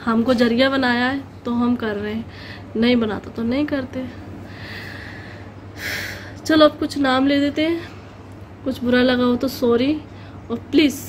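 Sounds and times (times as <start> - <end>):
sharp intake of breath: 4.4 - 6.4.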